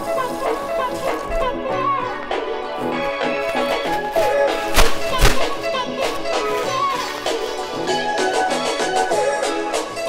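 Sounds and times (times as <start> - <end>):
background music: 0.0 - 10.0
dull thuds: 0.1 - 7.6.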